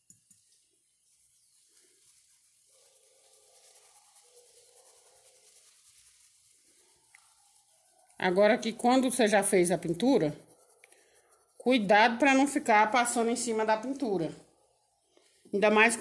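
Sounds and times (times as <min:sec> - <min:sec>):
paintbrush rubbing on cloth: 0:00.3 - 0:14.1
small ticks: 0:01.6 - 0:08.2, 0:10.8 - 0:11.4.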